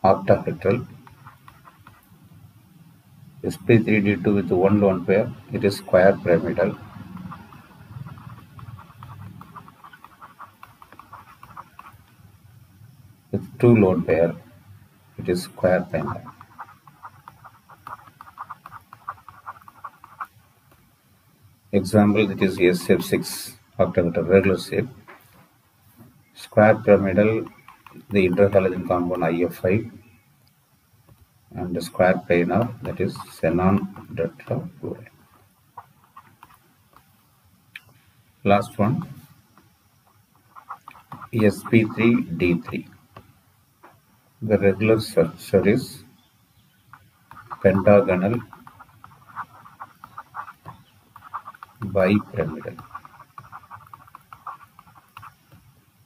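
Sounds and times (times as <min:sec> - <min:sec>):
low hiss: 0:00.0 - 0:56.0
stylus tapping on pen tablet: 0:01.0 - 0:02.1, 0:06.6 - 0:12.1, 0:16.0 - 0:20.8, 0:27.4 - 0:28.6, 0:46.9 - 0:55.7.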